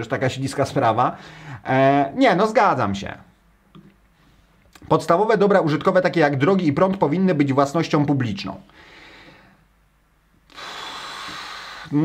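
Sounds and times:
man exhaling breathily: 10.5s - 12.0s.

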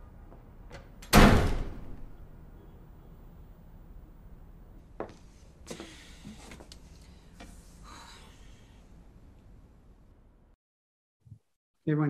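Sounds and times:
door slamming shut: 0.8s - 2.2s.

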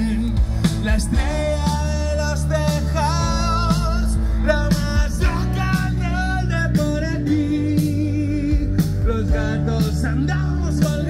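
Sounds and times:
bass guitar: 0.0s - 11.0s
drum kit beat: 0.0s - 11.0s
electric guitars: 0.0s - 11.0s.

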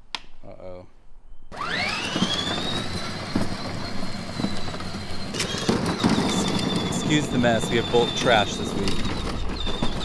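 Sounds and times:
toy car motor whine: 1.5s - 10.0s
plastic wheels rolling on concrete: 1.6s - 10.0s.

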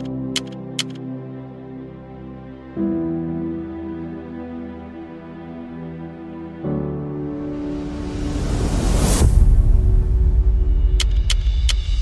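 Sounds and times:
keyboard key clicks: 0.0s - 1.0s, 11.0s - 11.8s.

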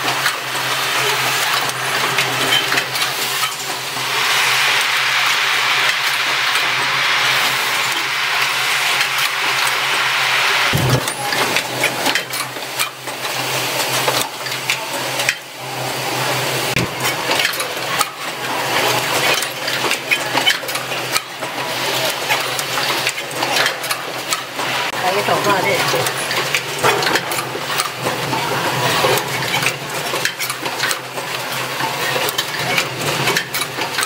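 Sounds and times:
mechanical clicks and clacks: 0.0s - 3.8s, 10.7s - 15.5s, 16.7s - 34.0s
low machine hum: 10.7s - 12.1s.

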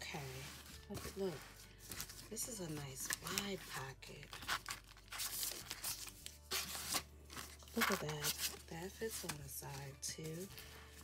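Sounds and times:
plastic binders rustling in tote bag: 0.0s - 11.0s.

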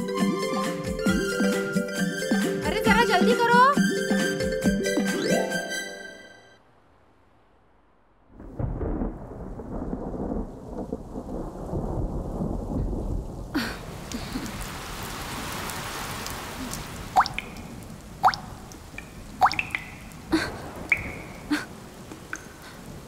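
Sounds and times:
heavy rain: 6.6s - 23.0s
low thunder rumble: 8.2s - 15.8s, 16.6s - 23.0s
water drops plopping: 16.6s - 22.7s.

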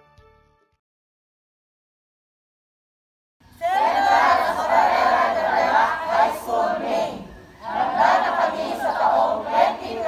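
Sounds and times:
group of adults shouting in unison: 3.6s - 10.0s.

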